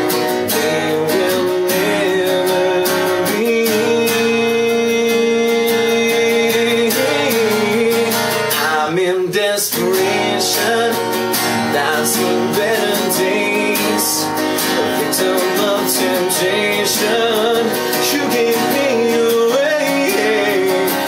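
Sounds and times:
acoustic guitar strumming: 0.0s - 21.0s
man singing: 0.0s - 21.0s.

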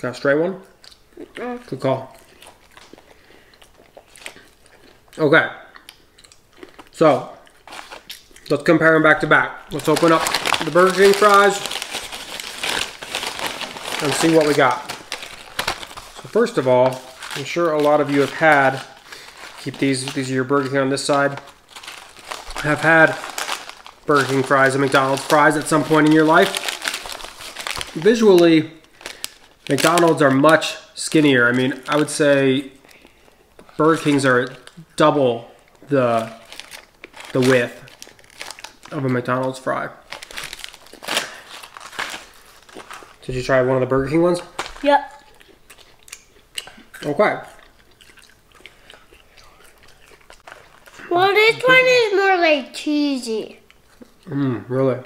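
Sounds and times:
paper bag crinkling: 9.7s - 30.4s, 36.1s - 39.0s, 40.0s - 43.4s.

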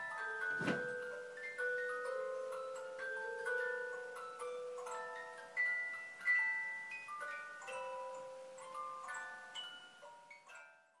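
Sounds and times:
tinkling bell-like melody: 0.0s - 11.0s.

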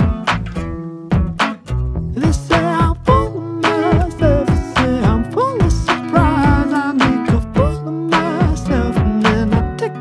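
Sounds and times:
song with vocals and drum beat: 2.2s - 10.0s.

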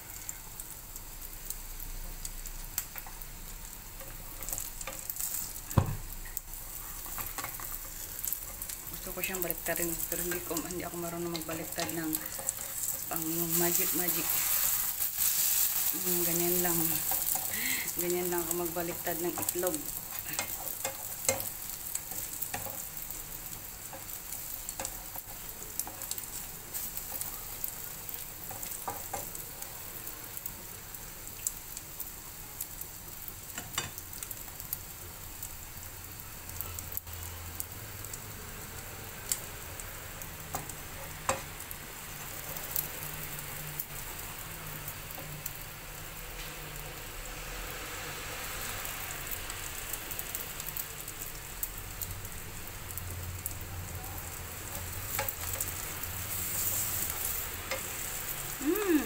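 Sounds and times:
omelette sizzling in a pan: 0.0s - 59.0s.

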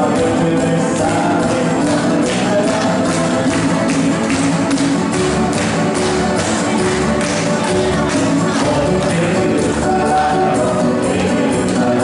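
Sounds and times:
folk dance music with keyboard: 0.0s - 12.0s.

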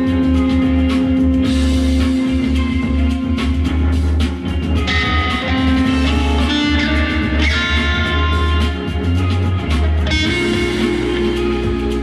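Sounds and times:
deep bass: 0.0s - 12.0s
electric guitar lead notes: 0.0s - 12.0s.

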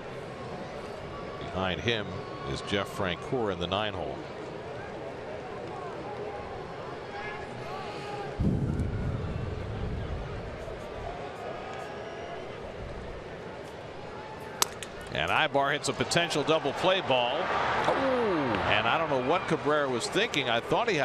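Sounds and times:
stadium crowd murmur: 0.0s - 21.0s
bat cracking ball: 14.6s - 15.1s.

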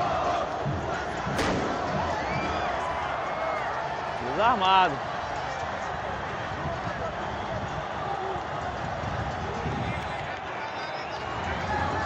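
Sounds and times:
spectators and players shouting: 0.0s - 12.0s.

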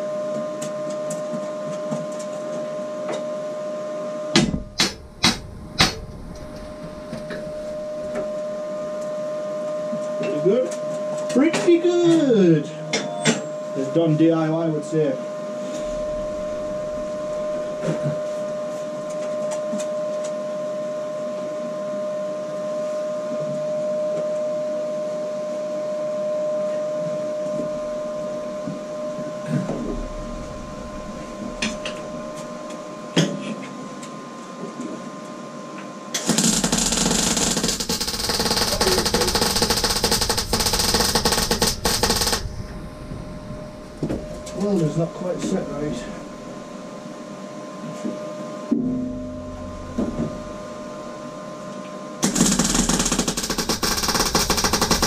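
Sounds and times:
steady hum: 0.0s - 55.0s
welding arc crackling: 4.5s - 8.1s, 36.2s - 45.0s, 52.2s - 55.0s.

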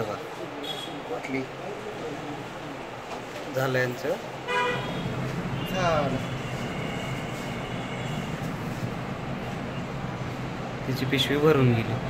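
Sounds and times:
vehicle horn toot: 4.5s - 8.4s.

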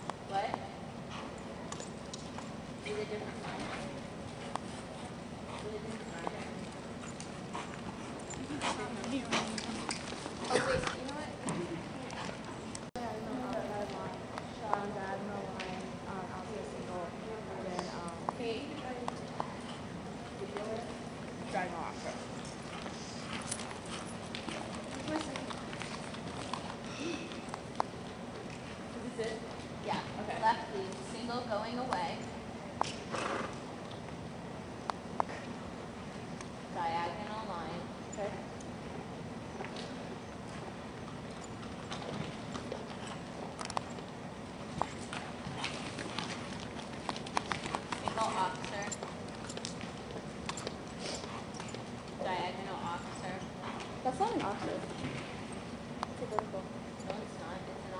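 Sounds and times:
horse hoofbeats on dirt: 18.2s - 30.2s, 40.4s - 57.9s.

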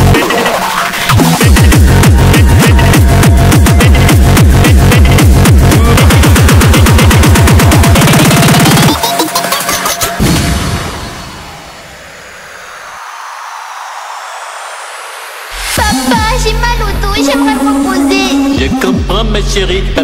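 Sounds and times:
hard electronic dance music: 0.0s - 20.0s.

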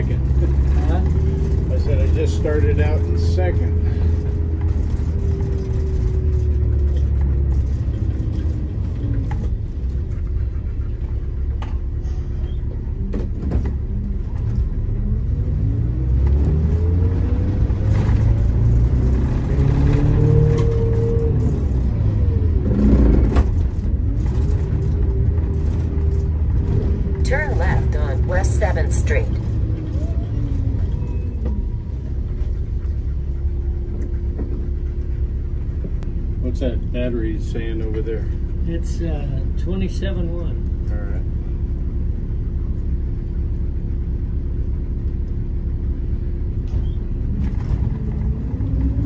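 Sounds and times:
diesel coach engine rumbling: 0.0s - 49.0s.

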